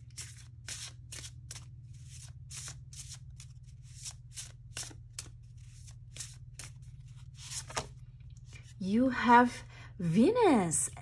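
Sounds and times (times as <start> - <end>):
cards being shuffled: 0.0 - 8.8.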